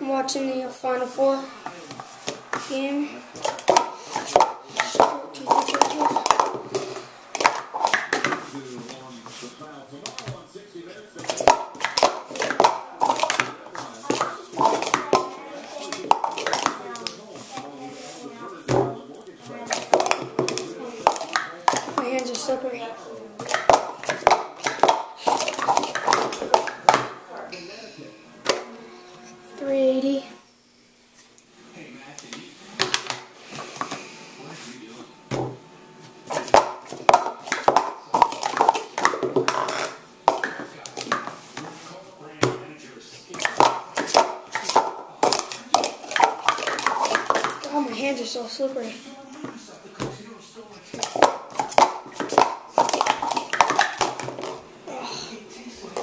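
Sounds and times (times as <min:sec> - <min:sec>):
plastic cups clattering: 0:01.9 - 0:10.4, 0:11.0 - 0:17.7, 0:18.7 - 0:22.8, 0:23.4 - 0:27.2, 0:36.3 - 0:41.6, 0:43.3 - 0:48.4, 0:50.9 - 0:54.7
person speaking: 0:02.5 - 0:06.6, 0:27.4 - 0:30.5, 0:47.6 - 0:49.2.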